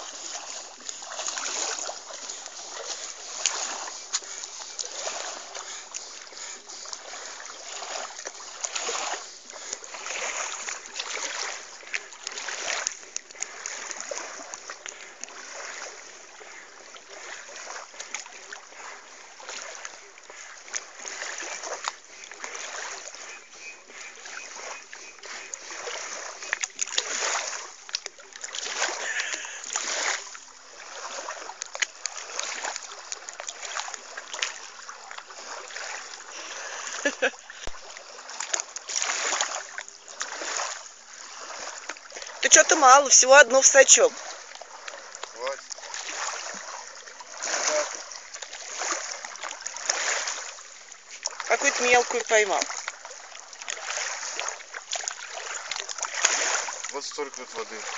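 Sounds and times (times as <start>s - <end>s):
water splashing and sloshing: 0.0s - 57.9s
sharp splash smacks: 53.6s - 57.0s.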